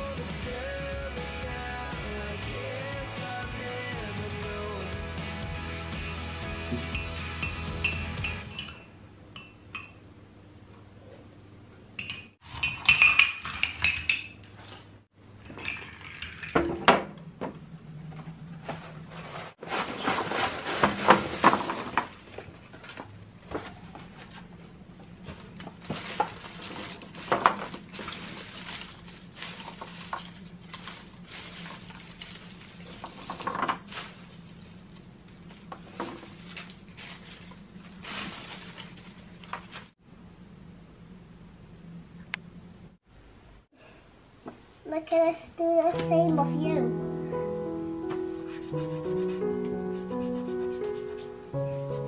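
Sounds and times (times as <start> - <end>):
spoon clinking in glass mug: 6.9 - 10.0, 12.0 - 14.4.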